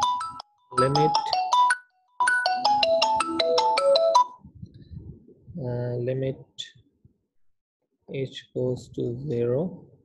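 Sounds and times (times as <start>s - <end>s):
phone ringtone melody: 0.0s - 4.5s.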